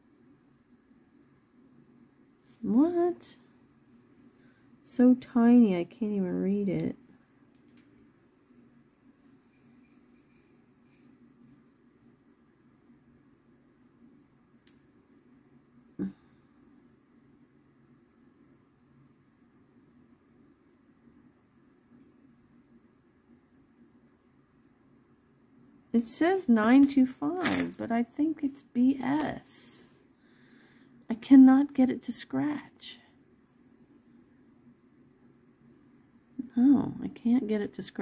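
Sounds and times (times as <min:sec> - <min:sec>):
faint room hum: 0:00.0 - 0:38.0.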